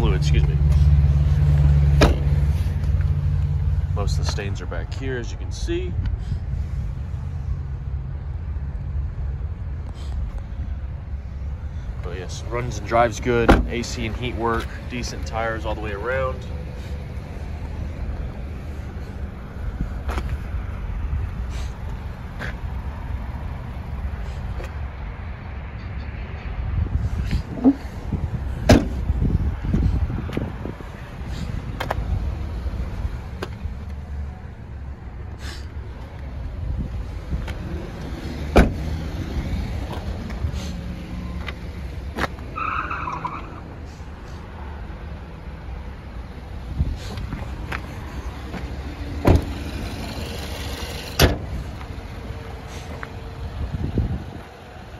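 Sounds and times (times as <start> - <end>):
steady low rumble: 26.2 - 38.0.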